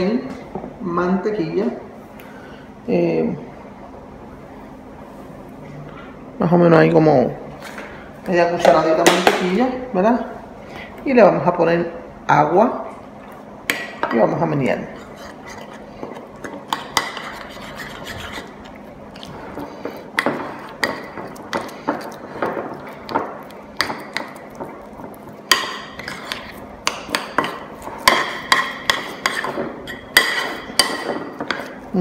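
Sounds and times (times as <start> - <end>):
metal spoon scraping ceramic bowl: 16.4 - 18.6, 25.8 - 27.6.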